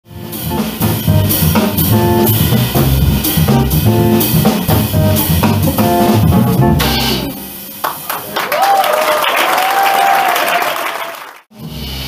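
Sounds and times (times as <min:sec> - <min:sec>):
drum kit with cymbal strokes: 0:00.0 - 0:07.8, 0:11.5 - 0:12.0
walking double bass: 0:00.1 - 0:07.4
electric guitar chords: 0:00.1 - 0:07.8.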